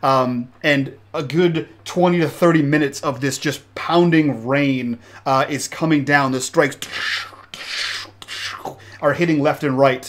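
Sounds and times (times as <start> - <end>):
man narrating: 0.0 - 7.2, 8.6 - 10.0
breathy hissing from man's mouth: 6.8 - 9.0.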